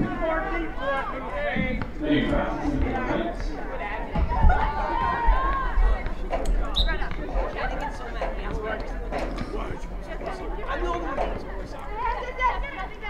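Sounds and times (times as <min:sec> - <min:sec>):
voices calling out and chattering: 0:00.0 - 0:13.0.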